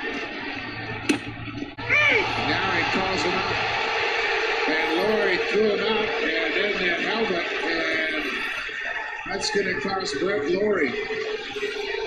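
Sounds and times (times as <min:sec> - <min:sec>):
indistinct voices: 0:01.7 - 0:12.0.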